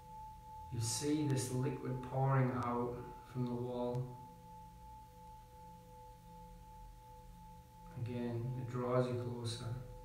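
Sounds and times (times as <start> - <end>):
metal singing bowls humming: 0.0 - 10.0.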